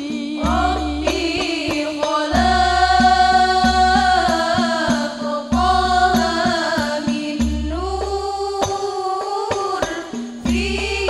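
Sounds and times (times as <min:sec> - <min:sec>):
frame drums beating: 0:00.0 - 0:11.0
girls singing together: 0:00.0 - 0:11.0.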